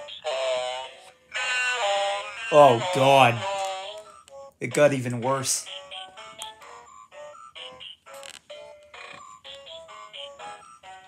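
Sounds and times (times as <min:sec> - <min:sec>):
choppy electronic toy notes: 0:00.0 - 0:11.0.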